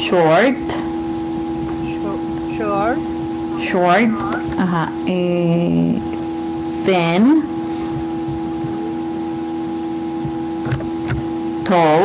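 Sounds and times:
steady multi-pitch hum: 0.0 - 12.0.

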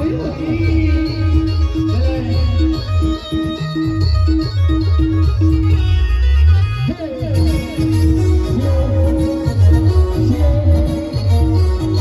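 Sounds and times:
electronic keyboard pattern: 0.0 - 12.0.

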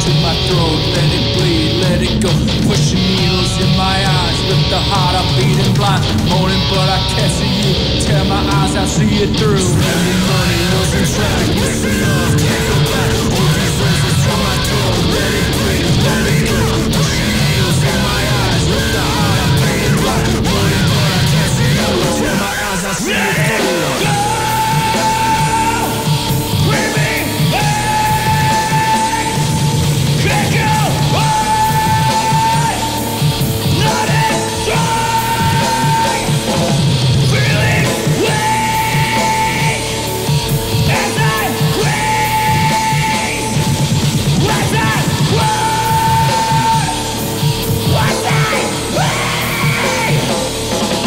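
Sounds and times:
bass guitar: 0.0 - 51.0
distorted electric guitars: 0.0 - 51.0
drums: 0.0 - 51.0
live heavy rock band: 0.0 - 51.0
yelled vocal: 0.0 - 51.0.

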